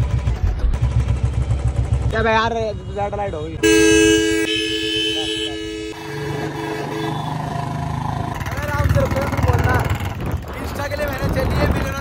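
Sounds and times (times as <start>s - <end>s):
motorcycle engine idling: 0.0s - 2.7s, 7.9s - 10.4s.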